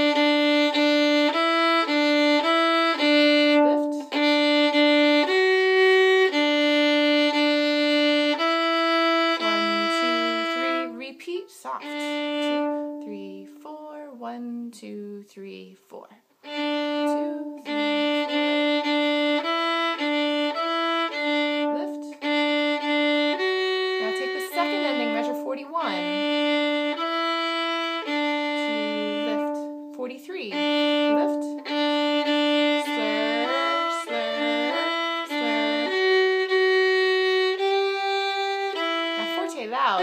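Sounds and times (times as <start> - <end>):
solo violin playing: 0.0 - 14.0, 16.4 - 40.0.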